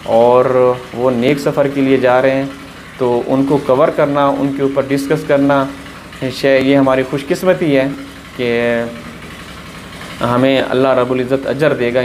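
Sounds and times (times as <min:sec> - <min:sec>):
water pumps humming: 0:00.0 - 0:12.0.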